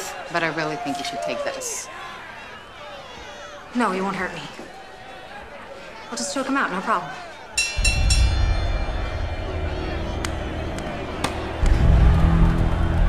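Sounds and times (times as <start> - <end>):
bell ringing: 7.6 - 10.6
dramatic music with low beat: 7.7 - 13.0.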